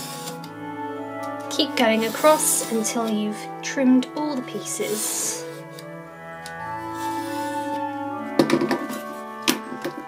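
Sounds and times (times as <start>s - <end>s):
soft background music: 0.0s - 10.0s
tools handled knock: 8.4s - 8.9s.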